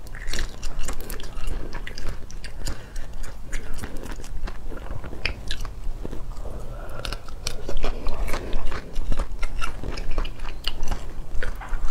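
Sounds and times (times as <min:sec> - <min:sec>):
chewing with wet smacking: 0:00.0 - 0:11.9
crunchy clicks of chewing shrimp: 0:00.0 - 0:11.9.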